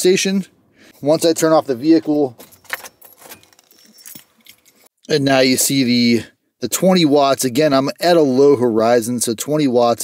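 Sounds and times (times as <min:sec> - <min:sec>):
keys jingling: 0:02.0 - 0:04.9.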